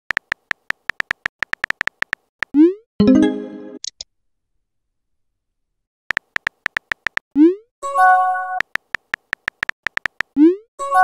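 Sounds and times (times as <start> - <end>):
phone keyboard tap clicks: 0.1 - 2.2, 6.1 - 7.2, 8.6 - 10.3.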